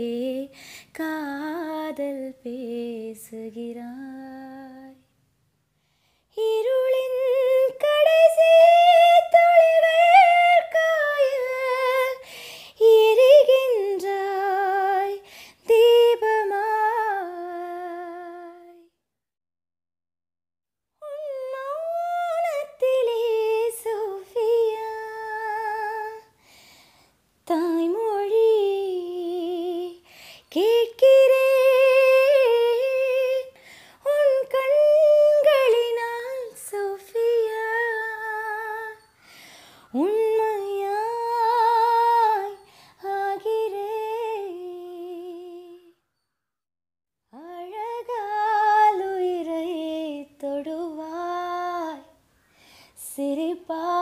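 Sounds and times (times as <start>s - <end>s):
woman singing unaccompanied: 0.0s - 5.1s, 6.3s - 18.9s, 21.0s - 26.4s, 27.4s - 39.2s, 39.8s - 46.0s, 47.3s - 52.2s, 53.0s - 54.0s.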